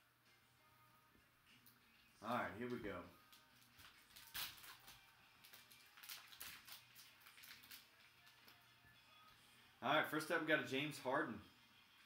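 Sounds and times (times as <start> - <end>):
wrapper crinkling being torn: 2.2 - 8.7.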